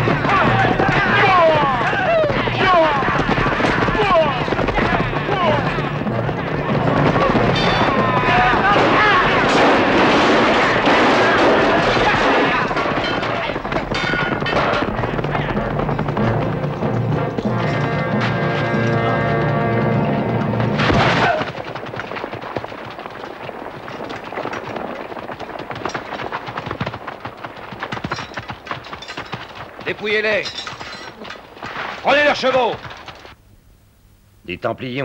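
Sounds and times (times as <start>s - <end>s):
men shouting war cries: 0.0s - 5.9s, 8.1s - 9.5s
sharp impacts: 0.0s - 26.6s
galloping hooves: 0.0s - 33.4s.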